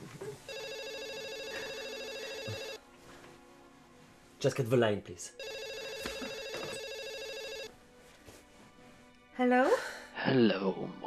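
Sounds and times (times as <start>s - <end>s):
telephone ringing: 0.5s - 2.8s, 5.4s - 7.7s.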